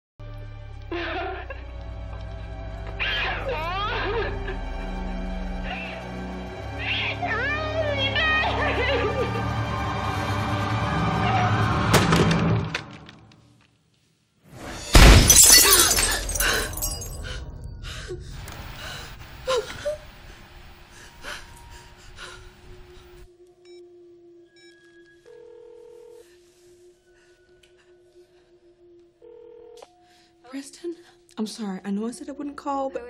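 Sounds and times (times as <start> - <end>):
scary music drone: 0.3 - 12.0.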